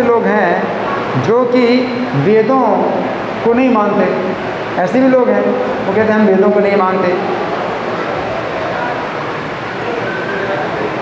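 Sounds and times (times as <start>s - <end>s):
steady rumble and hiss: 0.0s - 11.0s.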